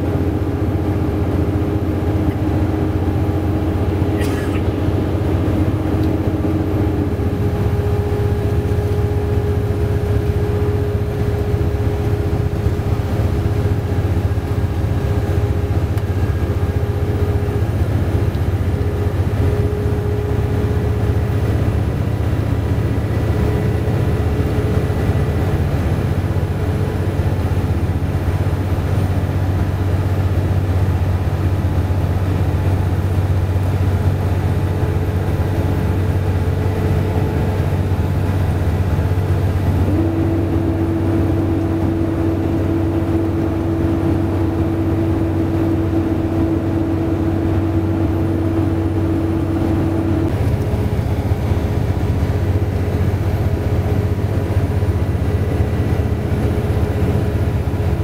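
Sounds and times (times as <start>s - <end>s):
vehicle engine and road noise: 0.0s - 58.0s.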